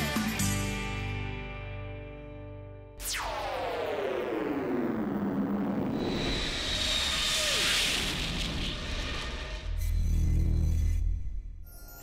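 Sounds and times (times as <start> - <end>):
synthesised tones sweeping down: 3.0 - 11.2
rising swell of noise: 3.1 - 11.2.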